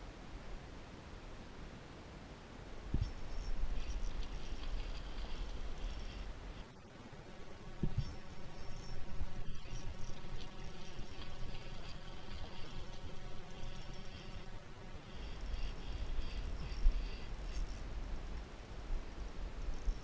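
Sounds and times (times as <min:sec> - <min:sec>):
fishing reel whirring: 0:03.0 - 0:06.7, 0:07.9 - 0:17.9.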